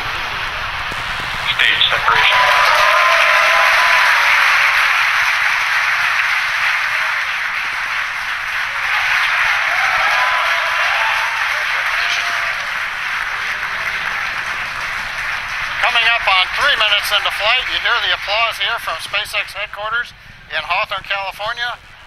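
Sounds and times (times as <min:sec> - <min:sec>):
cheering voices: 0:00.0 - 0:19.8
crowd applauding: 0:00.0 - 0:19.9.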